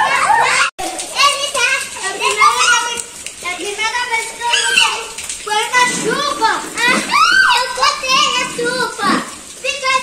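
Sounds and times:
children shouting while playing: 0.0 - 3.1.

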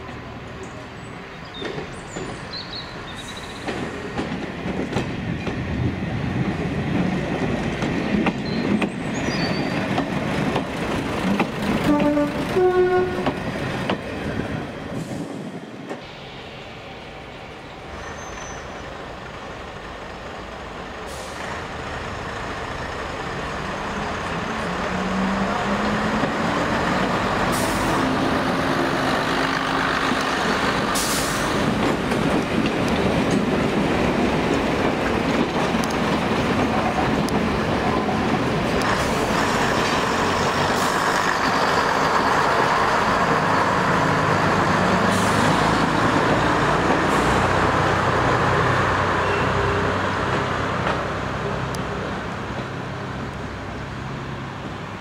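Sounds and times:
diesel train engine rumbling: 0.0 - 55.0
train wheels rumbling on rail: 0.0 - 55.0
train horn blasts: 11.8 - 13.4.

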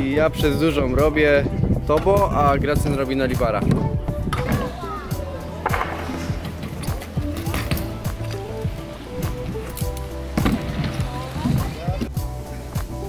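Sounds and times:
background music: 0.0 - 13.0
bike tyres rolling on concrete: 0.1 - 13.0
sharp landing knocks: 5.6 - 8.2.

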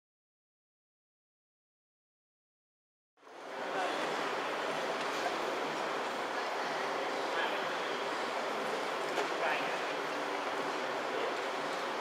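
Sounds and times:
indoor arena background din: 3.2 - 12.0.

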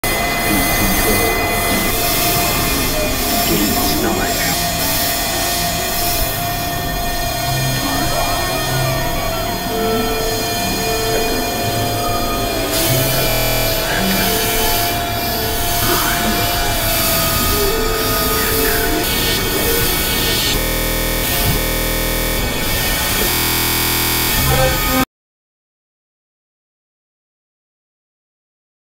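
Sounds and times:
glitchy stuttering electronic noise: 0.0 - 25.0
synthesizer drone: 0.0 - 25.0.

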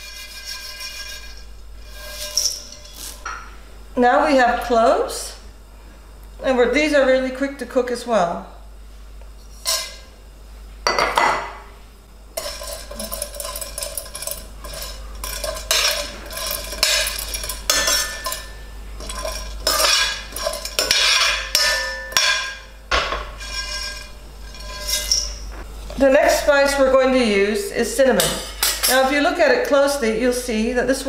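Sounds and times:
metal spoon scraping a pan: 0.0 - 3.4, 9.5 - 10.1, 12.4 - 25.5
dry cloves rattling: 12.4 - 21.2.

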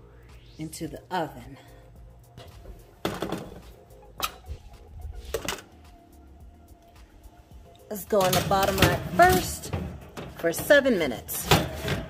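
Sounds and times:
soft background music: 0.0 - 12.0
metal sheet pan clattering: 8.2 - 12.0.

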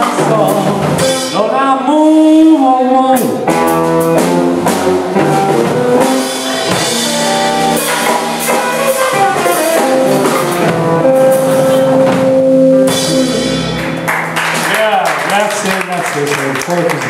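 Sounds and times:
electric guitar: 0.0 - 2.0, 2.6 - 15.2
electric bass: 0.0 - 15.0
drum kit: 0.0 - 17.0.

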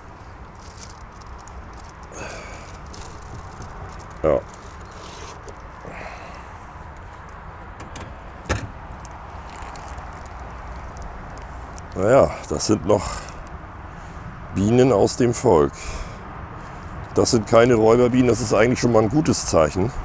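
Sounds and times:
plastic rustling: 0.0 - 5.9, 8.2 - 12.0.

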